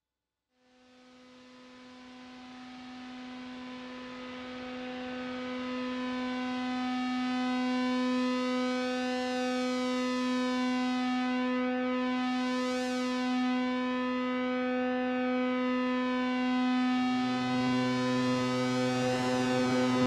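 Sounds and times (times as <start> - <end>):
analog synthesizer droning note: 15.7 - 20.0.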